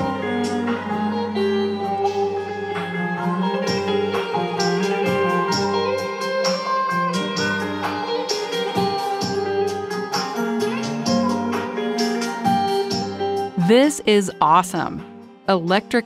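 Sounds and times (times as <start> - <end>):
keyboard: 0.0 - 16.0.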